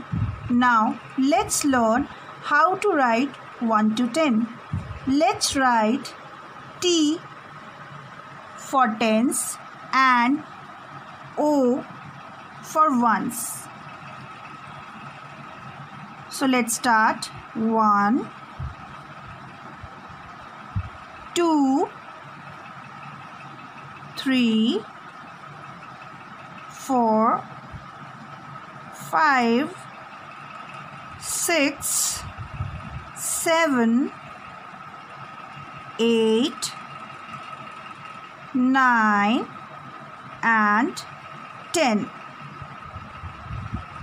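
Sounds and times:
background hum and hiss: 0:00.0 - 0:44.0.

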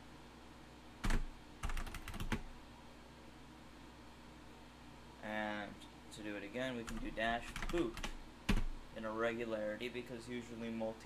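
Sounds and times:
computer keyboard typing: 0:01.0 - 0:02.5, 0:06.8 - 0:08.7.

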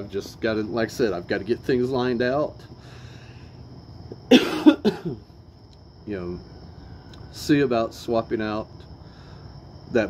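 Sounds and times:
man coughing: 0:04.3 - 0:05.2.

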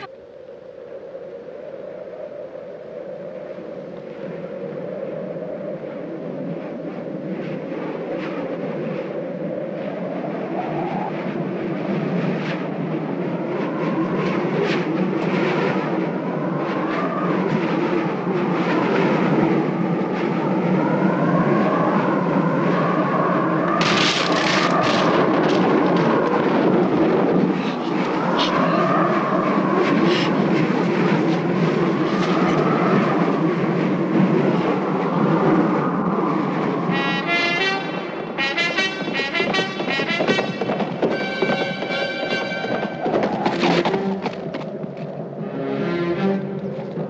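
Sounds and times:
low rumbling drone: 0:43.9 - 0:47.0.

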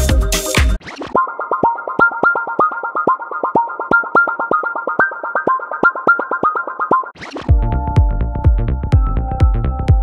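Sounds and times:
synthesizer arpeggio: 0:00.0 - 0:10.0.

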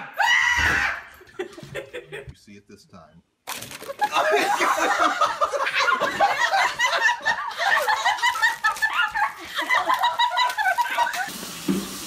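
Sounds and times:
people laughing hard: 0:01.1 - 0:02.3, 0:03.8 - 0:11.4.

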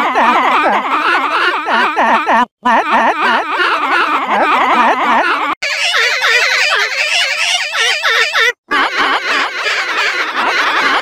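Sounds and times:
warbling cartoon voice: 0:00.0 - 0:11.0.

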